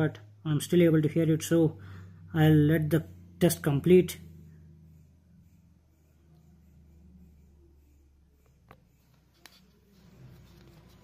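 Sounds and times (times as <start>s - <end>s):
low test tone sweep: 0.0s - 9.1s.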